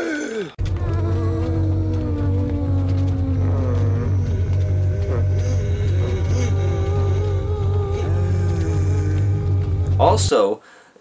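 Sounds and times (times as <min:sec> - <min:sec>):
zombie groans and moans: 0:00.0 - 0:10.5
steady low drone: 0:00.6 - 0:10.4.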